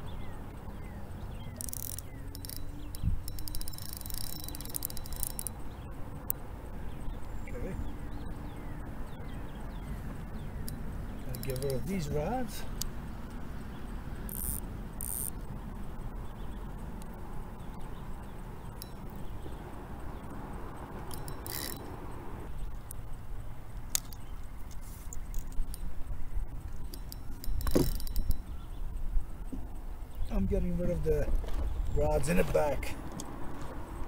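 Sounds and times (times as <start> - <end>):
steady low rumble: 0.0 - 32.2
fishing gear clicks and clatters: 1.4 - 6.4, 10.7 - 12.9, 18.6 - 19.6, 21.0 - 22.0, 23.9 - 26.0, 26.7 - 28.7.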